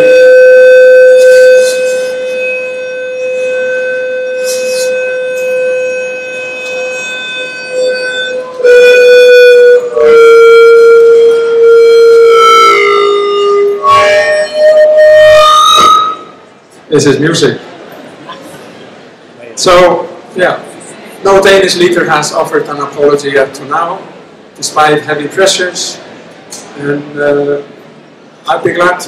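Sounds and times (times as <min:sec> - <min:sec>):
loudspeaker feedback tone: 0:00.0 - 0:16.5.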